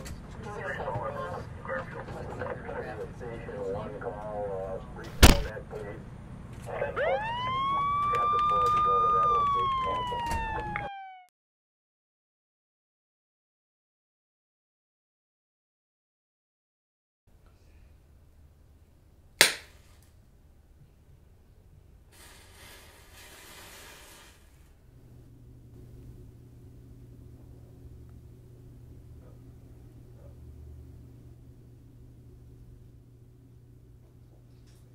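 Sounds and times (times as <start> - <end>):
police siren wailing: 6.7 - 11.3
low steady hum: 17.3 - 22.1, 24.7 - 34.9
match flaring and hissing: 22.1 - 24.8.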